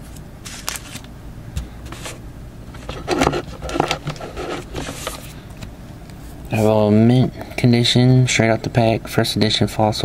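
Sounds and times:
cards rustling: 0:00.1 - 0:05.4
small clicks and scrapes: 0:02.8 - 0:05.3.

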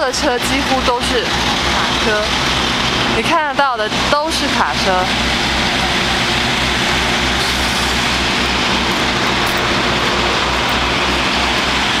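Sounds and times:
heavy truck engines throbbing: 0:00.0 - 0:12.0
traffic noise: 0:00.0 - 0:12.0.

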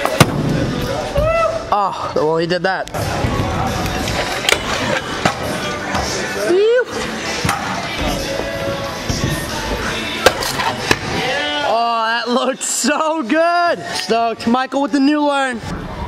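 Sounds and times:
person whooping: 0:01.2 - 0:01.7, 0:06.4 - 0:07.0.

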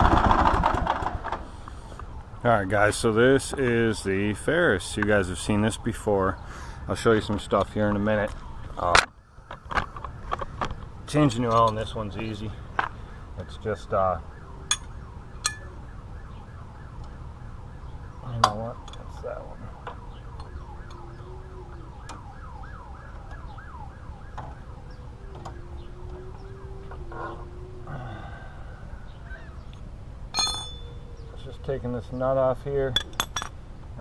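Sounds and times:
siren yelping: 0:01.7 - 0:29.7, 0:30.3 - 0:32.8.

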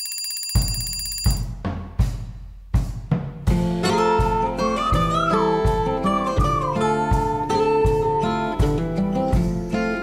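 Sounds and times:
telephone-style alarm ringing: 0:00.0 - 0:01.5
background music with a beat: 0:01.2 - 0:10.0.

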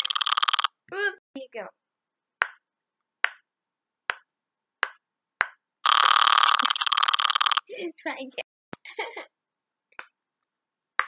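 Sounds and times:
pop-it fidget toy popping: 0:00.0 - 0:00.7, 0:04.1 - 0:07.6.

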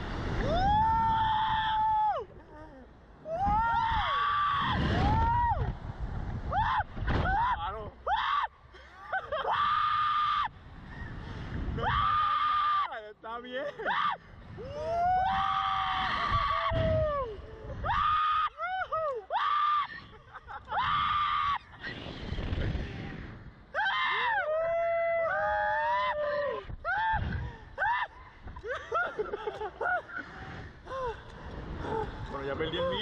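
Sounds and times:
rushes of wind noise: 0:00.0 - 0:02.5, 0:03.2 - 0:08.0, 0:09.7 - 0:12.8, 0:14.0 - 0:18.4, 0:19.8 - 0:23.9, 0:26.5 - 0:33.0
men screaming and yelling: 0:03.2 - 0:05.8, 0:11.7 - 0:13.0, 0:13.6 - 0:21.8, 0:23.7 - 0:33.0.

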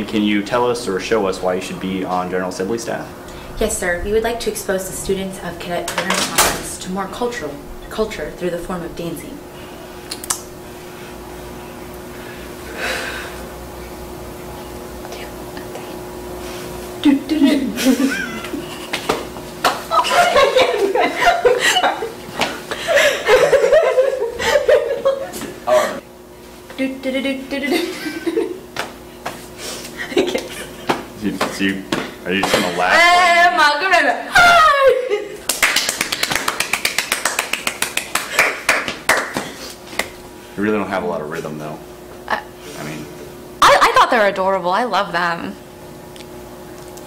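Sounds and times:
steady hum: 0:00.0 - 0:47.0
hands clapping quickly: 0:35.4 - 0:40.2.

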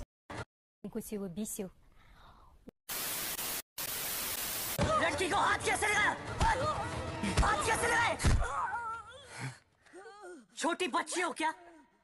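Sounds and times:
television static hiss: 0:02.9 - 0:04.8.

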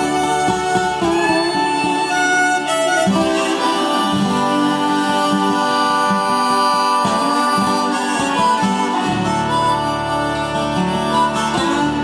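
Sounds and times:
acoustic guitar accompaniment: 0:00.0 - 0:12.0
concertina: 0:00.0 - 0:12.0
harmonica: 0:00.0 - 0:12.0.

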